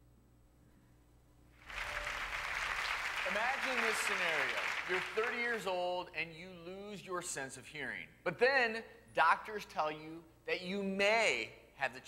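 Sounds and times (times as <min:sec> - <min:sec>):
studio audience applause: 0:01.6 - 0:05.9
man speaking: 0:03.2 - 0:12.0.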